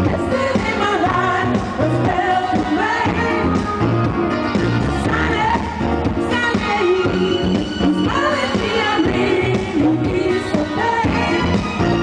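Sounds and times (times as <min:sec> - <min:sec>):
live pop band playing: 0:00.0 - 0:12.0
steady bass line: 0:00.0 - 0:12.0
woman singing: 0:00.0 - 0:12.0.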